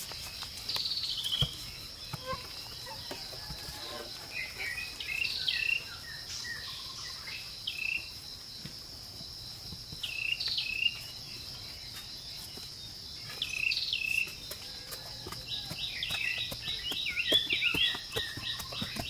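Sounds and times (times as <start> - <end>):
insects trilling: 0.0 - 19.0.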